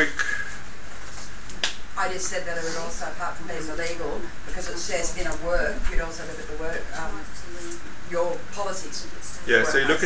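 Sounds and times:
room hum: 0.0s - 10.0s.

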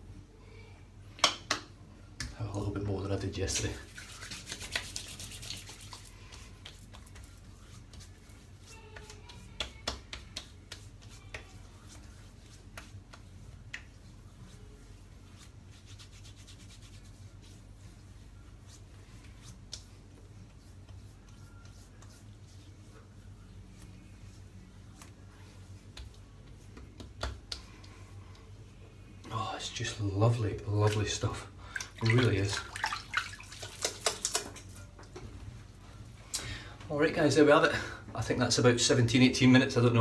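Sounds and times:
hands rubbing skin: 3.4s - 28.7s, 30.4s - 34.8s
light clicks and pats: 4.5s - 14.1s, 19.1s - 22.3s, 25.8s - 28.5s.

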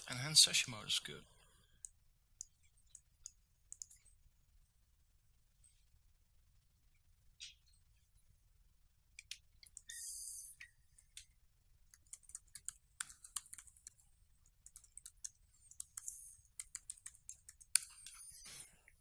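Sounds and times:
laptop keyboard typing: 1.8s - 4.2s, 9.2s - 18.7s.

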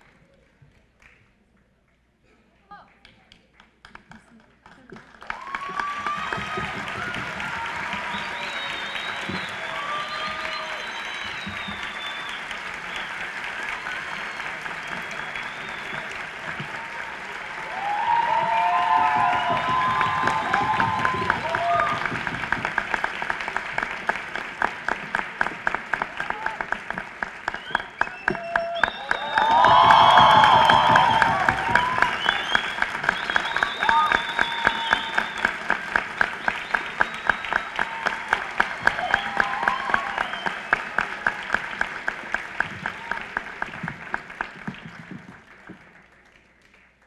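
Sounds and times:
audience clapping in rhythm: 0.0s - 1.8s, 2.7s - 47.0s
audience shouting and cheering: 5.3s - 23.5s, 28.0s - 42.0s.

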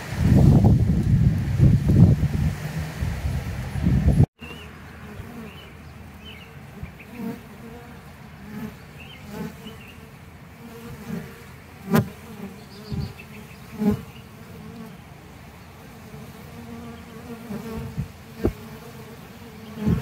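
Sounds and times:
honeybees buzzing: 0.0s - 20.0s.

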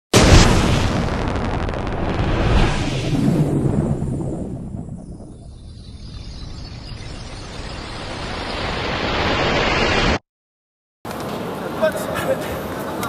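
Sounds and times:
explosion boom with rumbling tail: 0.1s - 10.2s.

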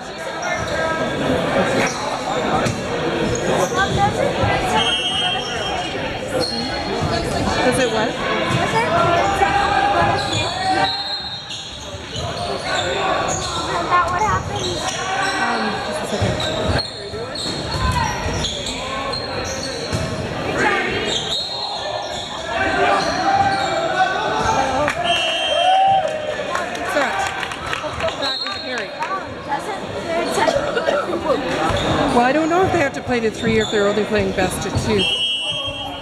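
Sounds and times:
spectators' voices: 0.0s - 36.0s.

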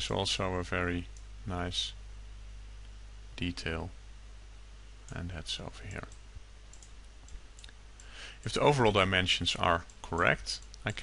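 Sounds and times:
low steady hum: 0.0s - 11.0s
computer mouse clicks: 6.0s - 8.6s.

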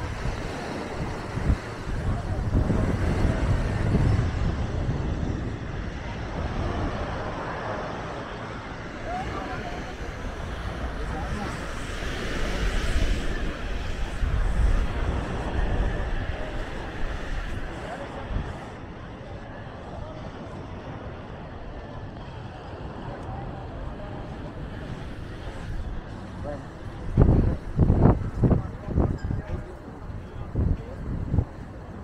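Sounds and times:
distant chatter of people: 0.0s - 32.0s.

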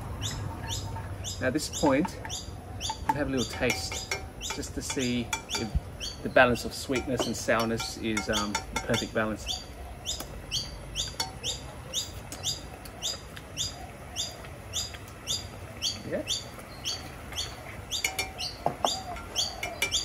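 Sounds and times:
bird chirping: 0.0s - 20.0s.

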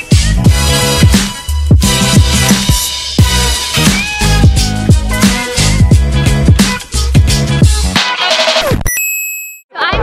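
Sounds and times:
background music: 0.0s - 8.8s.

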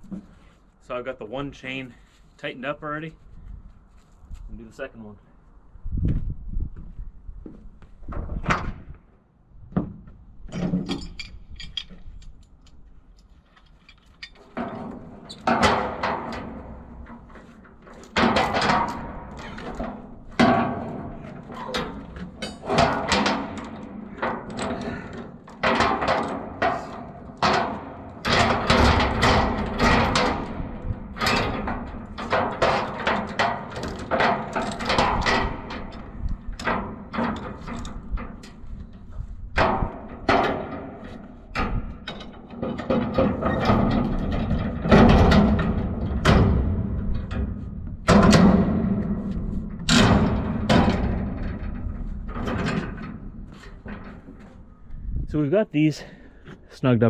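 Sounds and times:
chain clanking against metal container: 17.9s - 38.6s.

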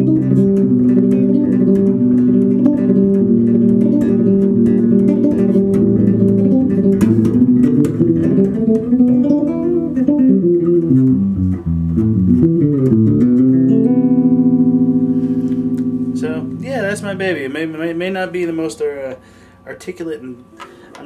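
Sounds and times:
electric bass played fingerstyle: 0.0s - 19.5s.

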